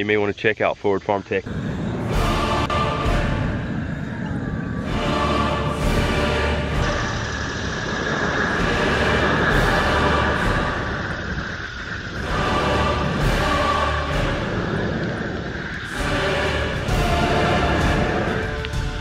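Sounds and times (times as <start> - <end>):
background music with sustained chords: 1.4 - 19.0.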